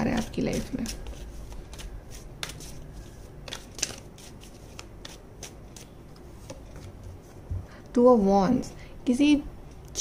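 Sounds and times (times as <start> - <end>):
cards being shuffled: 0.1 - 5.9.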